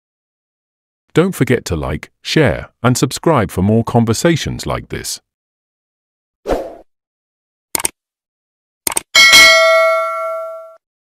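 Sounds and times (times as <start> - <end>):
notification bell ringing: 9.2 - 10.8.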